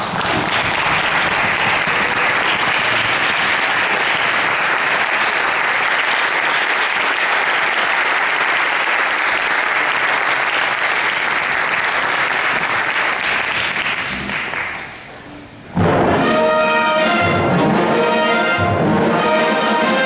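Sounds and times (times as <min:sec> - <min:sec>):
audience applauding: 0:00.0 - 0:15.1.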